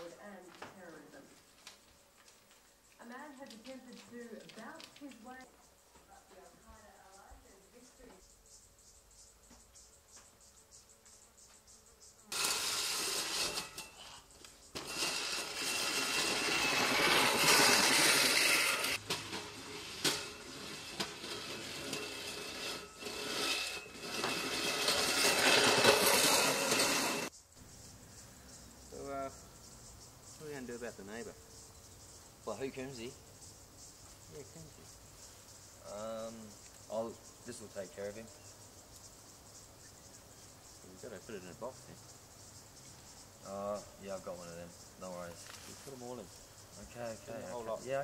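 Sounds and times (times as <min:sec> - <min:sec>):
lawn mower motor running: 0:14.8 - 0:27.3.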